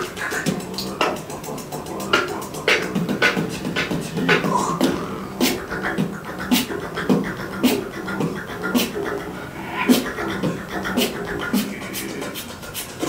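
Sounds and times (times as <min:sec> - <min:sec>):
beatboxing drum hits: 0:00.0 - 0:13.0
low hum: 0:00.0 - 0:13.0.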